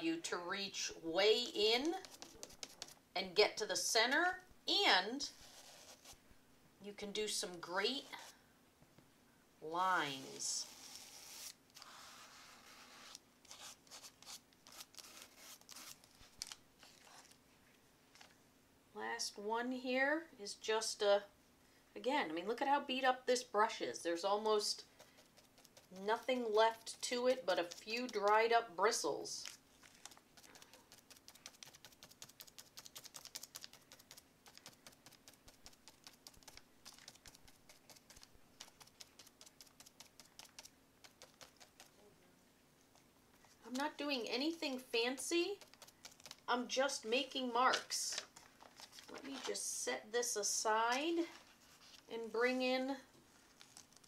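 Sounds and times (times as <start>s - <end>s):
toothbrush scratching paper: 1.8s - 3.0s, 5.4s - 6.2s, 10.1s - 16.1s, 24.4s - 28.5s, 30.0s - 42.0s, 45.0s - 46.5s.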